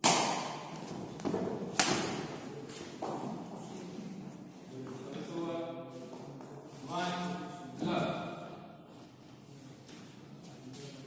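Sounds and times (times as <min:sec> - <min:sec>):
racket hitting shuttlecock: 0:00.0 - 0:02.4.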